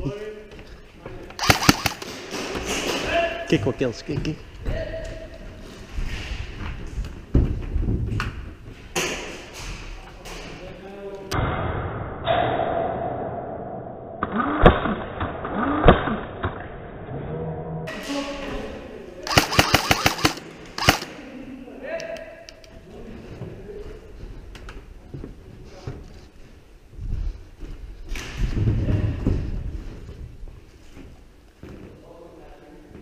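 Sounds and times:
airsoft rifle shots: 1.4 - 2.4, 19.3 - 21.2
man talking: 3.0 - 5.2.

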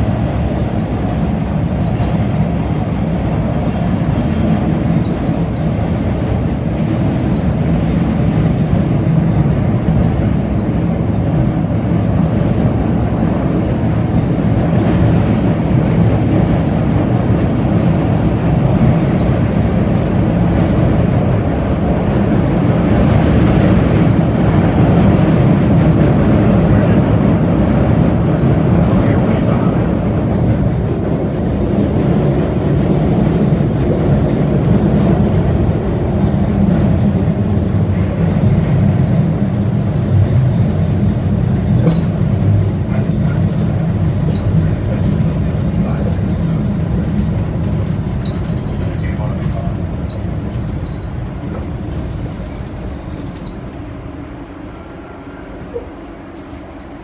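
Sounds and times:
subway train rumbling in tunnel: 0.0 - 57.0.

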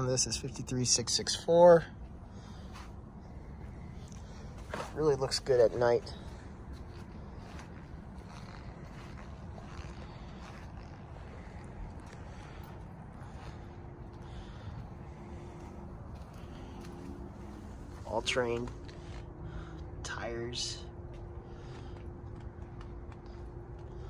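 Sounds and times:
faint steady hum: 0.0 - 24.0
low outdoor rumble: 0.0 - 24.0.

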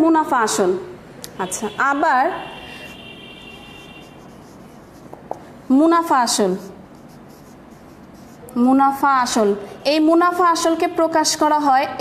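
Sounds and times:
marker writing on whiteboard: 2.4 - 9.8.

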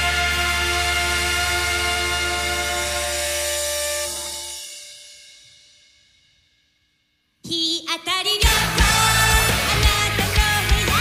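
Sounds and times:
bass guitar: 0.0 - 4.3, 8.4 - 11.0
cymbal wash: 0.0 - 7.2.

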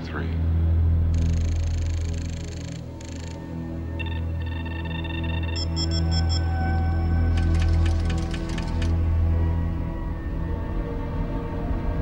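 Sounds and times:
low synthesizer drone: 0.3 - 12.0.

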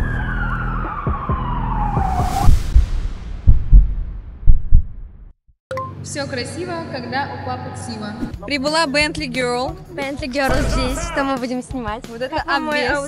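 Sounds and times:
siren-like descending tone: 0.0 - 2.5
whoosh: 2.0 - 5.2
deep bass thuds: 2.5 - 5.3, 10.5 - 11.2.

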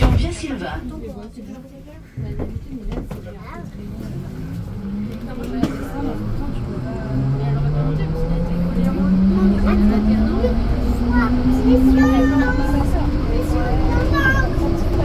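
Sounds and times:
faint passenger voices: 0.0 - 15.0
train running-gear rumble: 1.2 - 15.0
traction motor whine rising: 4.5 - 15.0.

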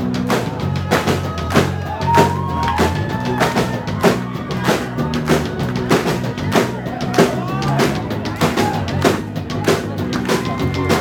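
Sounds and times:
drum hits: 0.0 - 11.0
rock band playing: 0.0 - 11.0.

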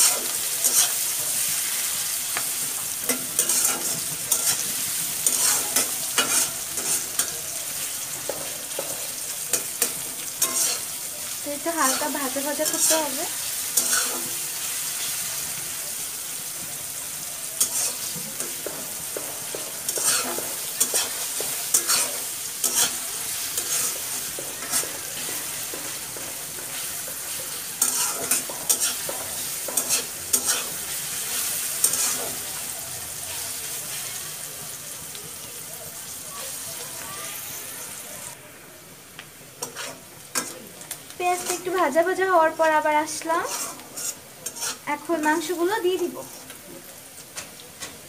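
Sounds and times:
spatula scraping metal pan: 0.0 - 1.7, 3.0 - 7.3, 8.2 - 11.0, 13.6 - 14.4, 17.6 - 32.4, 39.6 - 40.6, 41.4 - 41.8, 43.1 - 45.4
onions sizzling in oil: 0.0 - 48.0.

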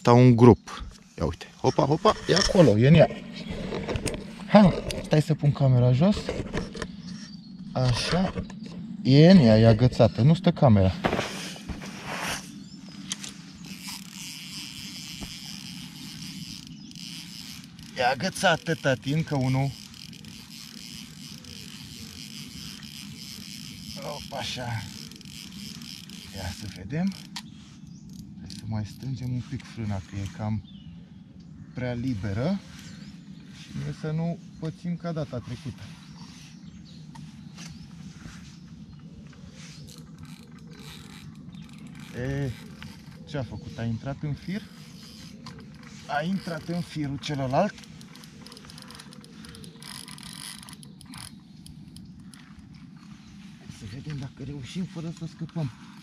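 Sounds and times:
low even hum: 0.0 - 56.0
high insect buzz: 11.0 - 31.7, 35.4 - 53.6
fishing reel ticking and whirring: 12.4 - 29.4, 38.6 - 43.4, 44.3 - 53.5
faint clicks: 45.0 - 53.2.

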